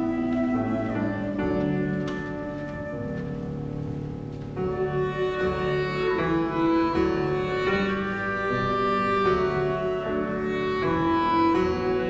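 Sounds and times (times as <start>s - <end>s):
clarinet: 0.0s - 12.0s
flute: 0.0s - 12.0s
piano: 0.0s - 12.0s.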